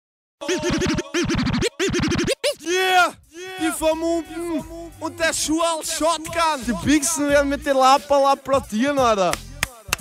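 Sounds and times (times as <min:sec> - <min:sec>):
turntable scratching: 0:00.4 - 0:02.6.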